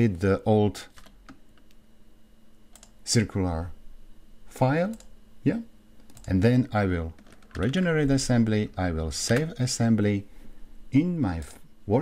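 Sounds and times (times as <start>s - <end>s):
low steady hum: 0.0s - 12.0s
computer mouse clicks: 2.7s - 3.0s.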